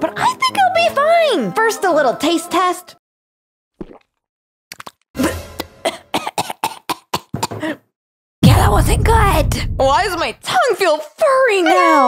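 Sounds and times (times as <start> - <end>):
woman coughing and spluttering: 5.2 - 7.8.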